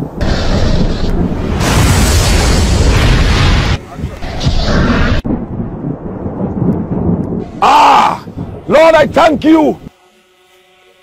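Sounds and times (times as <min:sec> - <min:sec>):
loud low rumbling: 0:05.0 - 0:08.7
man crying out: 0:07.6 - 0:08.3.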